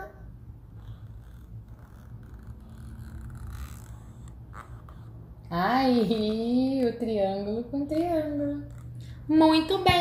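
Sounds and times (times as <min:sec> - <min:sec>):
low steady background rumble: 0:00.0 - 0:10.0.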